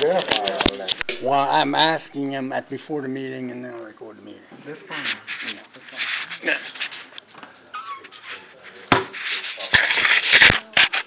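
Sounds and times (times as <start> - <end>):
people talking: 0.0 - 11.0
rustling: 4.6 - 11.0.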